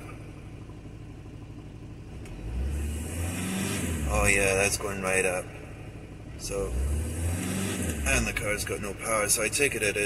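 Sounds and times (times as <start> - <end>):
diesel engine idling and revving: 0.0 - 10.0.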